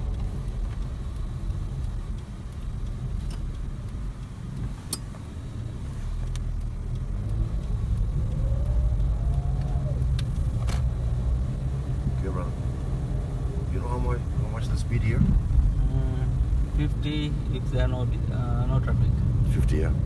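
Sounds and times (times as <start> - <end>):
car engine and tyres rumbling: 0.0 - 20.0
sharp clicks: 0.1 - 13.2.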